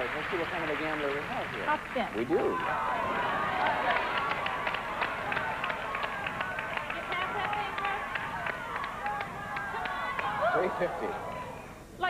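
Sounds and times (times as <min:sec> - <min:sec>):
faint voices calling out: 0:02.1 - 0:12.0.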